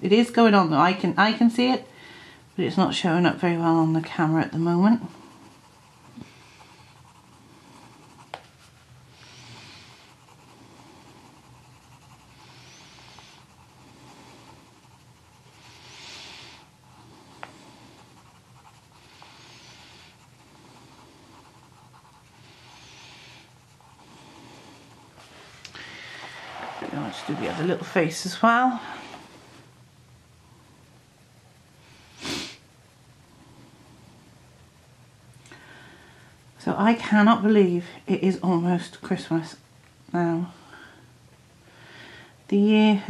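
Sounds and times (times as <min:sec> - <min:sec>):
pencil shading on paper: 0:02.5 - 0:25.3, 0:26.1 - 0:28.0.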